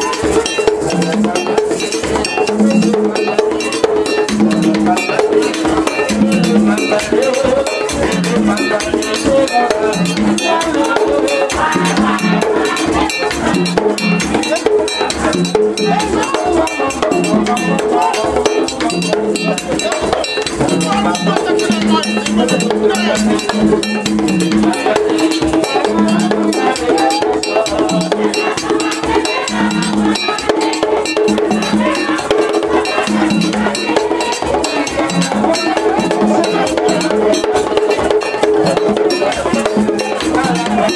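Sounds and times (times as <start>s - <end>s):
drums: 0.0s - 40.9s
group singing long notes: 0.0s - 40.9s
struck bell: 0.0s - 40.9s.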